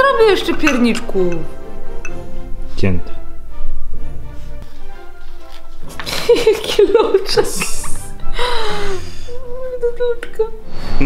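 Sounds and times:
slow background melody: 0.0s - 11.0s.

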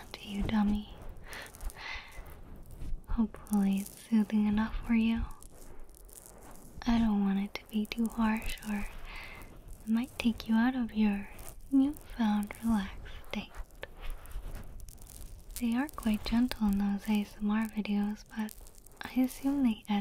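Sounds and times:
woman speaking softly: 0.0s - 1.0s, 3.1s - 5.3s, 6.8s - 9.0s, 9.9s - 13.6s, 15.6s - 20.0s.

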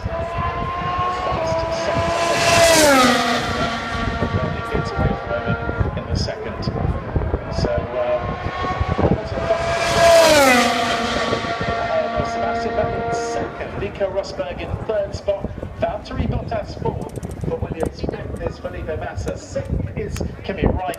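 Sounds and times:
racing cars passing at high revs: 0.0s - 15.8s.

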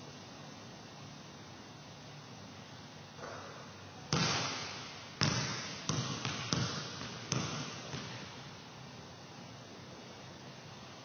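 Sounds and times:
basketball bouncing on gym floor: 3.2s - 8.6s.

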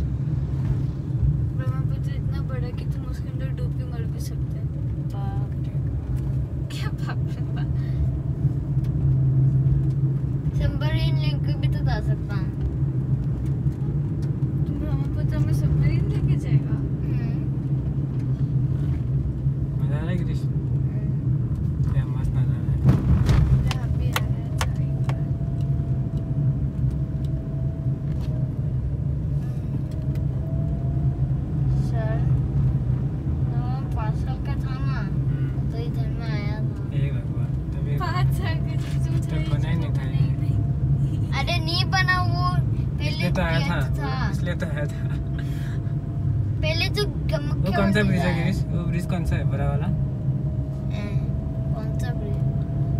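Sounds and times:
car engine and road noise: 0.0s - 52.9s
voices in car: 1.3s - 13.0s, 13.6s - 26.4s, 30.5s - 52.9s.

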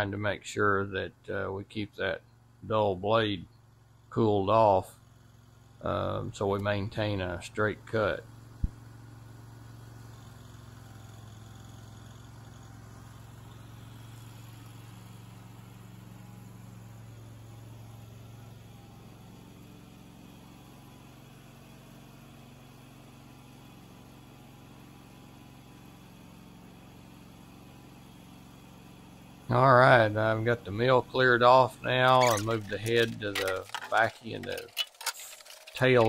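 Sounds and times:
band sawmill running: 29.5s - 36.0s.

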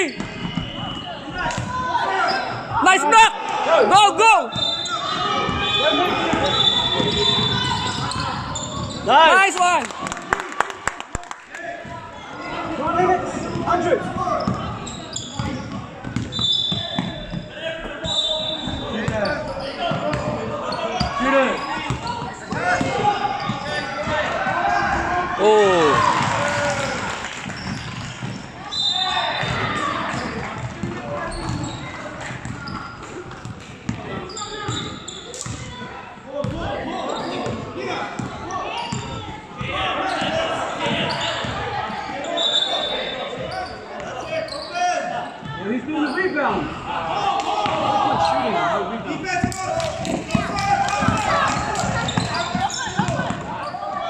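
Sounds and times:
players and spectators calling out: 0.0s - 54.0s.

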